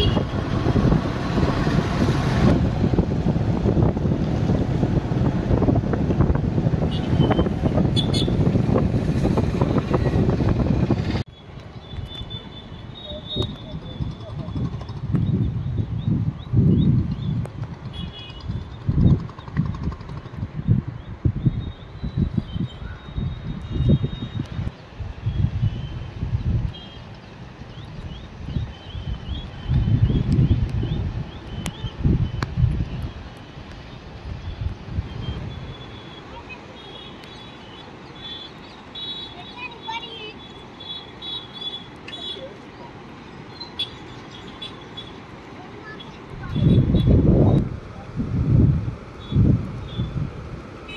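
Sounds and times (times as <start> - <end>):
wind buffeting microphone: 0.0 - 11.3, 13.0 - 36.6, 45.2 - 50.9
small birds chirping: 11.3 - 47.6.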